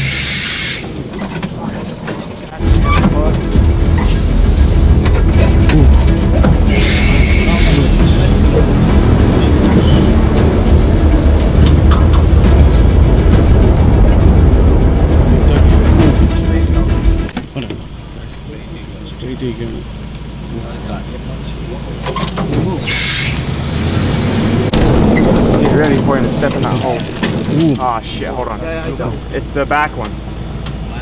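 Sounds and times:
vehicle engine rumbling: 0.0 - 31.0.

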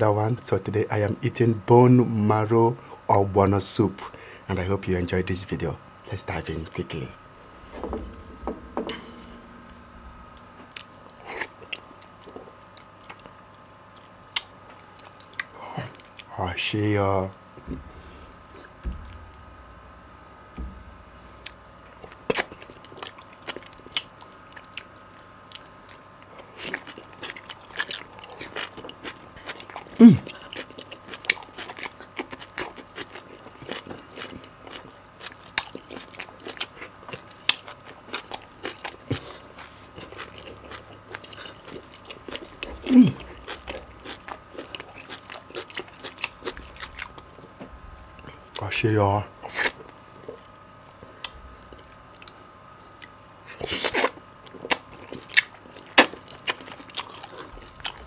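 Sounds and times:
man chewing wetly: 7.4 - 16.3, 21.3 - 48.7, 49.4 - 58.0
man humming with pleasure: 30.0 - 30.3, 42.8 - 43.2.

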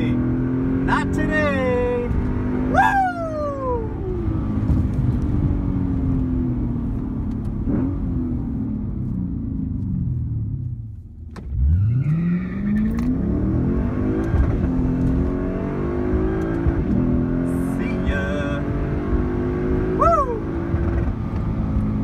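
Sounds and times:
car engine revving: 0.0 - 10.6, 11.4 - 22.0.

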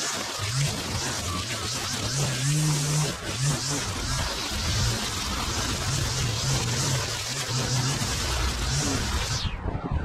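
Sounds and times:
trimmer line slashing grass: 0.0 - 9.4
string trimmer engine running: 0.6 - 9.3.

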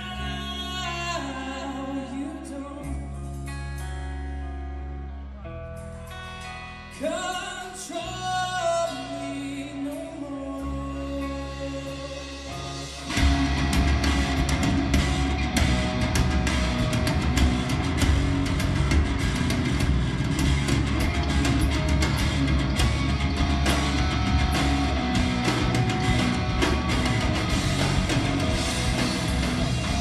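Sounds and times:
live rock band playing: 0.0 - 30.0
drum kit beat: 12.3 - 30.0.

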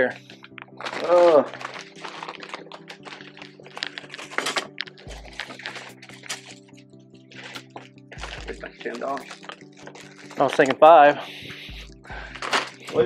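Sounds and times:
background music with held notes: 0.0 - 13.0
plastic bag crinkling: 0.3 - 10.9.

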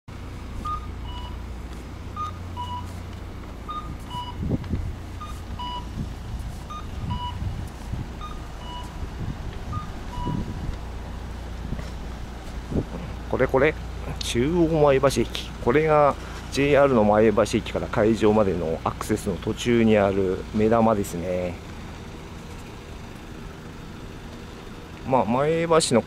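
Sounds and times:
traffic rumble: 0.1 - 26.0.

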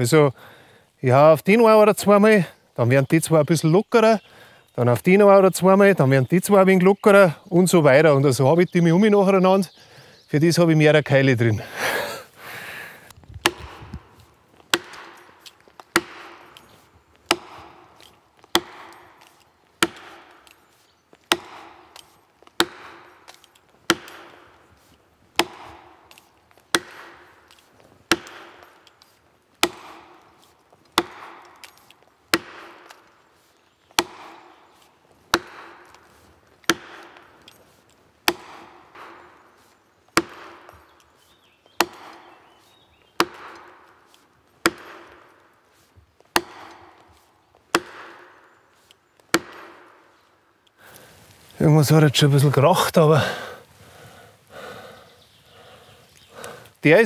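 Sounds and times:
hammer striking plastic wedges: 13.4 - 16.7, 17.3 - 20.6, 21.3 - 24.6, 25.4 - 28.9, 29.6 - 33.2, 34.0 - 37.5, 38.2 - 41.0, 41.8 - 42.4, 43.2 - 45.4, 46.3 - 48.4, 49.2 - 50.2.

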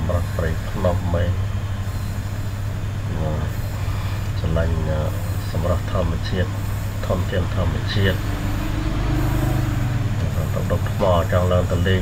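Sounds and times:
steady low hum: 0.0 - 12.0
man preaching: 10.2 - 12.0.

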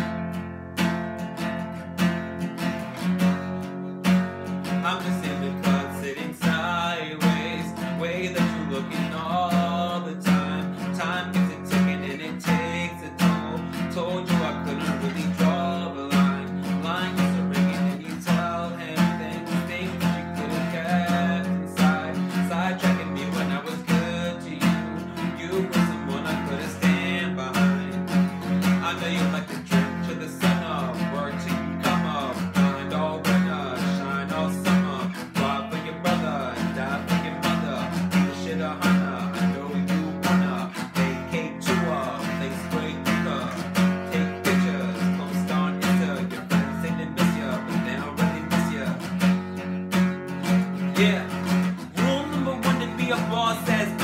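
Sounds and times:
acoustic guitar strumming: 0.0 - 54.0
man singing: 0.8 - 54.0.

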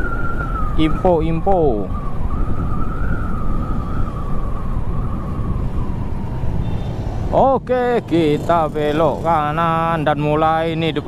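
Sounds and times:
wind rumble on microphone: 0.0 - 11.0
motorcycle engine running: 7.7 - 9.8.

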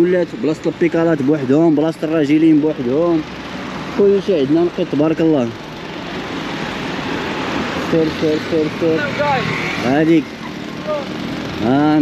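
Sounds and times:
van driving past: 0.0 - 12.0.

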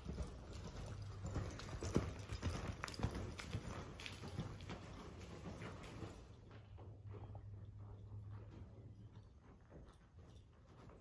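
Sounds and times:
horse hoofbeats on soft dirt: 0.0 - 11.0.

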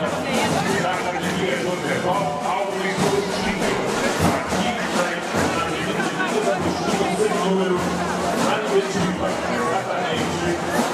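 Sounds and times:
crowd chatter: 0.0 - 10.9
faint music: 0.0 - 10.9.

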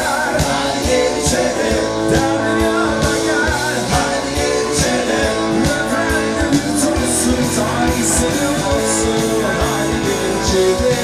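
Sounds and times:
bass guitar: 0.0 - 11.0
drum kit beat: 0.0 - 11.0
electric guitar: 0.0 - 11.0.

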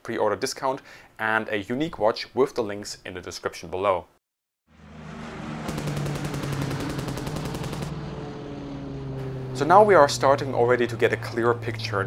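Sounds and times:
aircraft piston engine drone: 4.7 - 12.0
machine gun burst: 5.7 - 8.0.

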